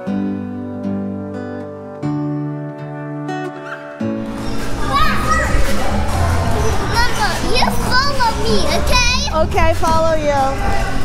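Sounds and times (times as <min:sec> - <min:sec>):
music: 0:00.0 - 0:11.0
busy indoor din: 0:04.2 - 0:11.0
children shouting and squealing: 0:04.3 - 0:09.6.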